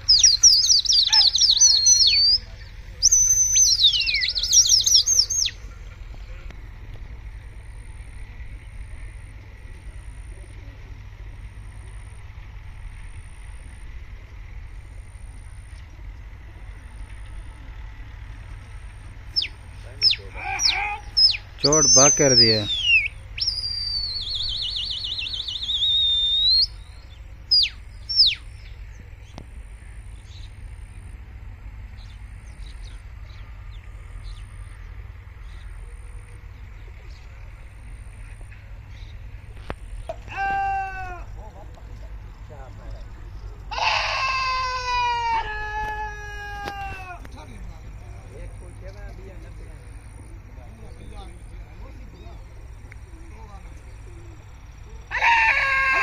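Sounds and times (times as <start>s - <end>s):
steady low rumble: 0.0s - 40.3s, 41.0s - 55.2s
men calling out: 19.4s - 24.0s, 40.1s - 48.6s
high warbling whistle: 19.4s - 28.5s
short sharp whistles: 22.7s - 26.9s.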